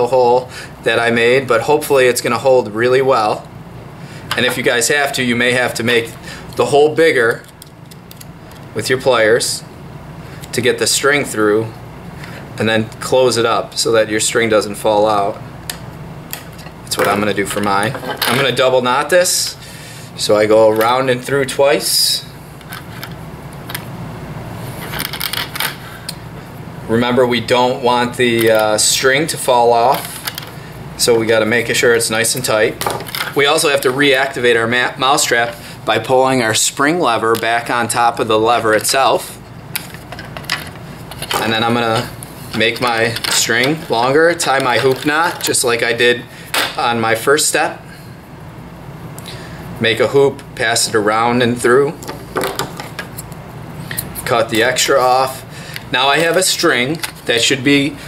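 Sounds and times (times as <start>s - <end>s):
steady low hum: 0.0s - 58.0s
string handling clicks and rustles: 7.3s - 8.8s, 15.1s - 19.3s, 22.6s - 23.9s, 24.7s - 26.2s, 28.1s - 30.6s, 31.5s - 34.4s, 36.5s - 47.0s, 51.9s - 57.9s
hand tools on wooden workbench: 55.7s - 57.5s.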